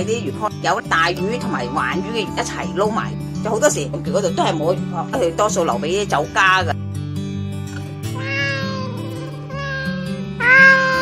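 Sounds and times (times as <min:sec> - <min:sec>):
background music: 0:00.0 - 0:11.0
cat meowing: 0:08.1 - 0:11.0.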